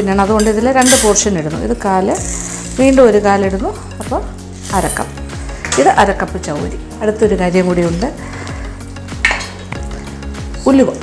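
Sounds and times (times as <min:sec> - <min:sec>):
pearls rattling into metal bowl: 0:00.4 - 0:01.3, 0:02.1 - 0:03.2, 0:04.5 - 0:05.2.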